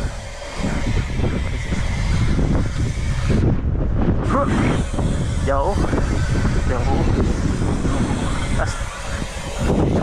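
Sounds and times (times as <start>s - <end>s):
bike tyres humming on asphalt: 0.0s - 10.0s
wind noise on microphone: 0.0s - 10.0s.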